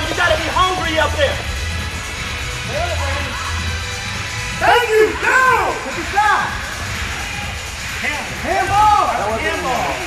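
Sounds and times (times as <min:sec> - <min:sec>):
spectators shouting: 0:04.6 - 0:07.6.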